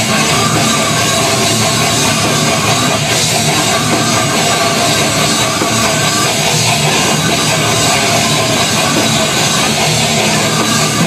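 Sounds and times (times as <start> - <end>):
distorted electric guitars: 0.0 - 11.0
drum kit with cymbals: 0.0 - 11.0.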